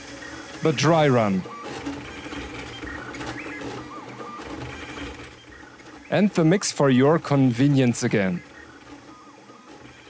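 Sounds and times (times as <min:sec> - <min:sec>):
stepper motor whines: 0:00.0 - 0:10.0.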